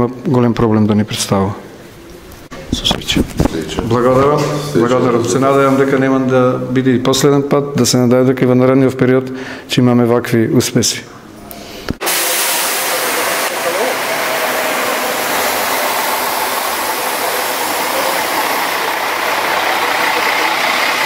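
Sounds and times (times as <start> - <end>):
strong hiss: 12.0 - 21.0
bus engine and road noise: 13.4 - 21.0.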